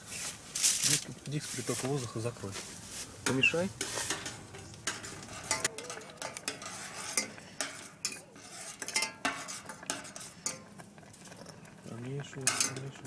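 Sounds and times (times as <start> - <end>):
metal spoon scraping saucepan: 3.2 - 13.0.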